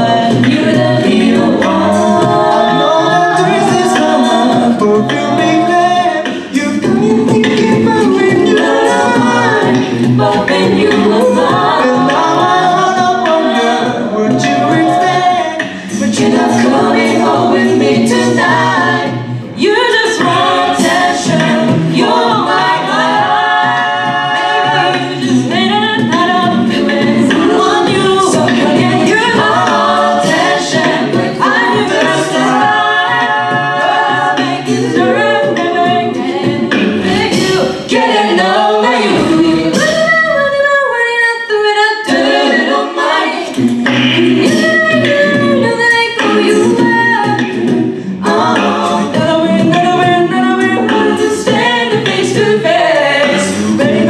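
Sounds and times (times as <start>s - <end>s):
a cappella group singing: 0.0s - 54.0s.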